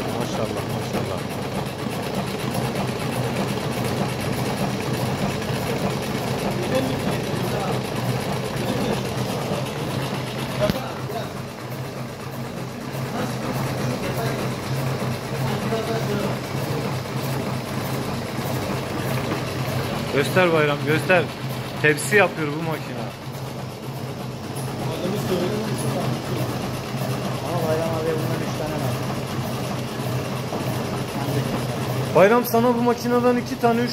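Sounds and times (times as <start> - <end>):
machine motor humming: 0.0 - 33.9.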